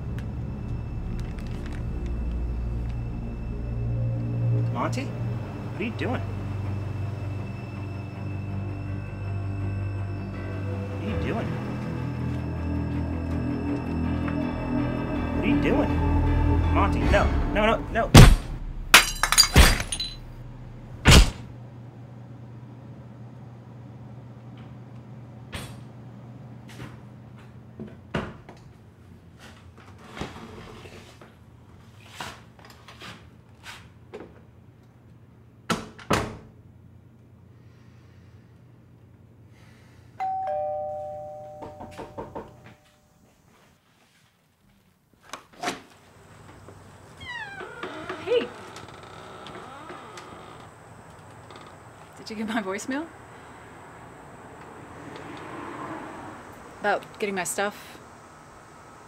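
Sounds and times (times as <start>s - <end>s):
object smashing with crash: 18.2s - 20.3s
clinking pieces: 19.0s - 20.2s.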